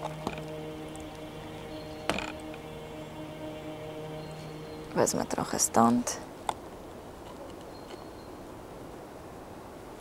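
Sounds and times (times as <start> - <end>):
background hiss: 0.0 - 10.0.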